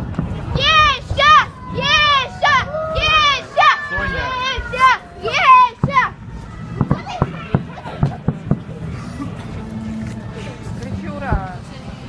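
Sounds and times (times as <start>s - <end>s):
child shouting and squealing: 0.6s - 6.1s.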